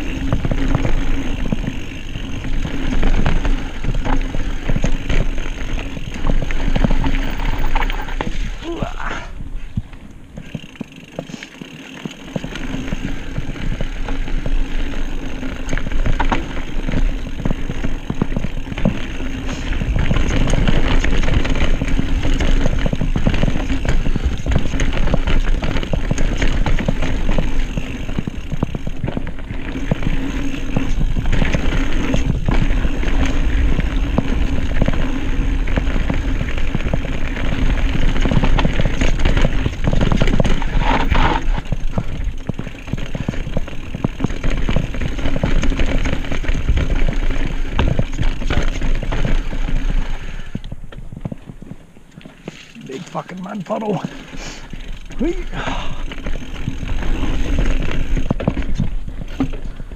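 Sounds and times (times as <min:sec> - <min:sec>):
bike clattering and rattling: 0:00.0 - 0:59.9
bike tyres rolling over dirt: 0:00.0 - 0:59.9
wind rumbling on microphone: 0:12.4 - 0:52.0.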